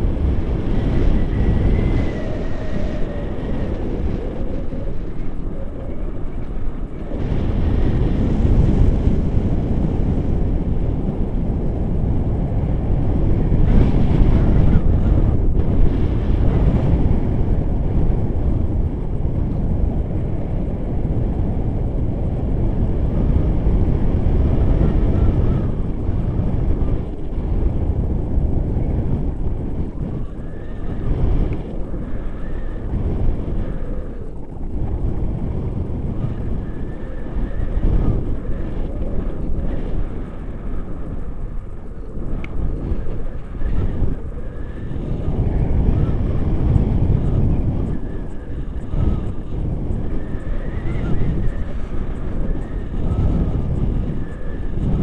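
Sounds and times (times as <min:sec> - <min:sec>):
wind buffeting microphone: 0:00.0 - 0:55.0.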